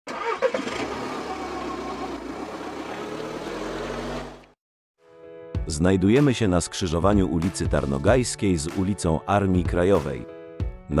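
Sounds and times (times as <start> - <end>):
car engine starting and running: 0.1 - 4.6.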